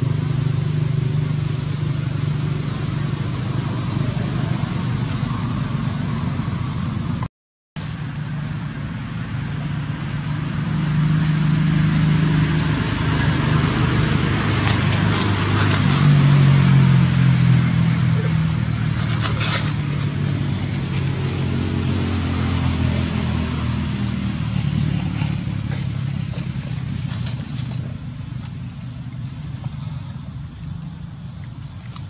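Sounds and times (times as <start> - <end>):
vehicle engine humming: 0.0 - 32.0.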